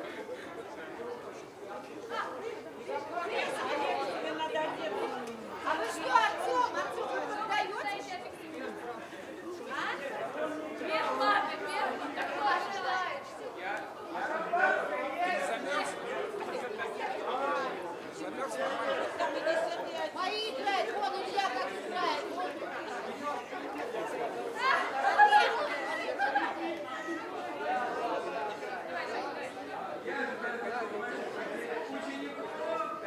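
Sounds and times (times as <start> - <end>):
overlapping chatter: 0.0 - 33.0.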